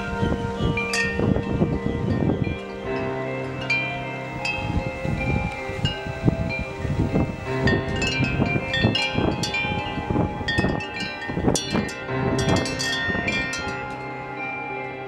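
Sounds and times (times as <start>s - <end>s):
metal wind chime ringing: 0.0s - 15.0s.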